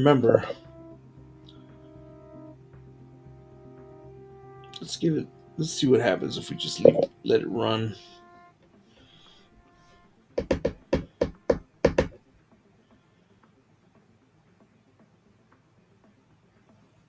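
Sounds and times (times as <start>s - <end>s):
faint background noise: 0.0s - 17.0s.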